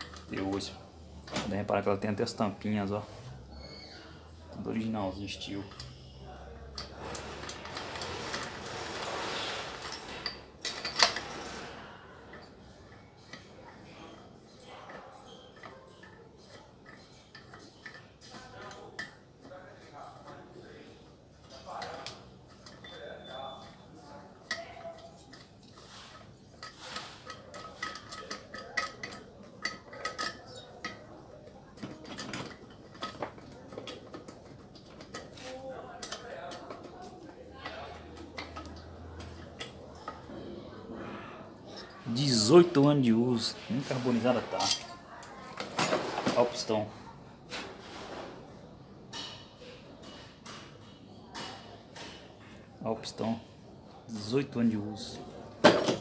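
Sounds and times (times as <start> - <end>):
metal tools clinking and clattering: 0.0 - 3.0, 3.6 - 19.6, 21.4 - 40.4, 41.7 - 46.9, 55.6 - 56.0.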